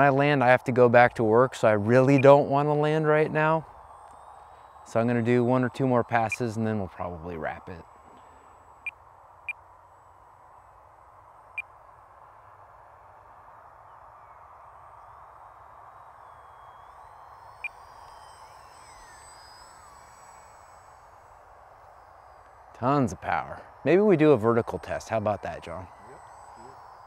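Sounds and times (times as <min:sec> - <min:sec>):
electric model plane motor whine: 0:00.0 - 0:27.0
steady hiss: 0:00.0 - 0:27.0.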